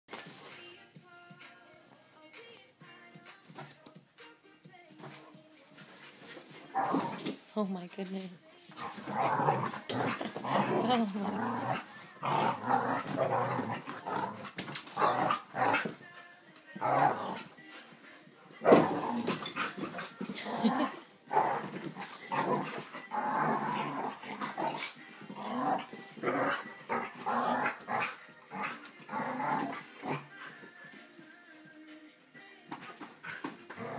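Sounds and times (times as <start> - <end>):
dogs growling and barking: 6.2 - 7.4, 8.7 - 16.1, 16.8 - 17.6, 18.6 - 30.7, 32.7 - 33.9.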